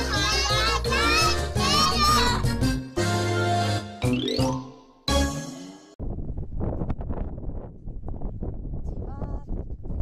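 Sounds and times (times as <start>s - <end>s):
wind buffeting microphone: 6.0s - 10.0s.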